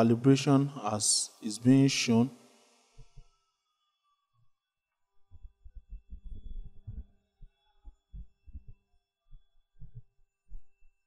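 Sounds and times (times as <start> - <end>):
faint electrical hum: 0.0 - 3.4.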